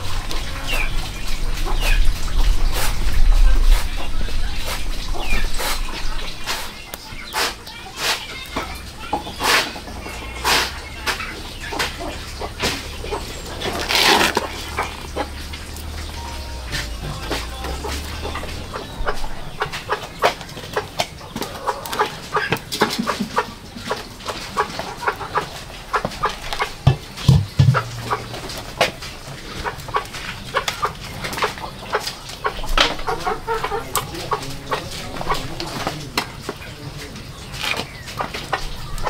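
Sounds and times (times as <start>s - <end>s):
chickens clucking: 0.0s - 39.0s
wood fire crackling: 0.0s - 39.0s.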